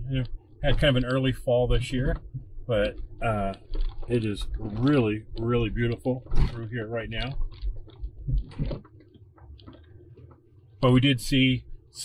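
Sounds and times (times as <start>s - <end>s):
car engine droning: 0.0s - 7.4s
vehicle knocks and rattles: 0.6s - 11.0s.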